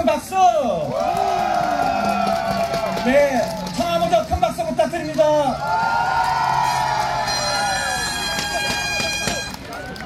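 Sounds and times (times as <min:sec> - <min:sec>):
crowd cheering and shouting: 0:00.7 - 0:04.4, 0:05.2 - 0:10.0
clapping: 0:00.9 - 0:04.5, 0:08.2 - 0:10.0.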